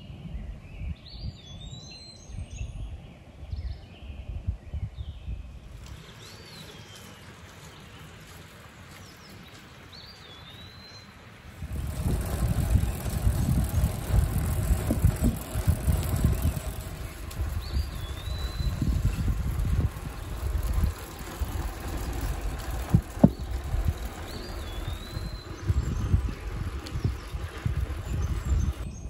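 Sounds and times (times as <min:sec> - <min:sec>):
wind buffeting microphone: 0:00.0 - 0:08.4, 0:11.5 - 0:29.0
tyre rumble: 0:11.6 - 0:28.8.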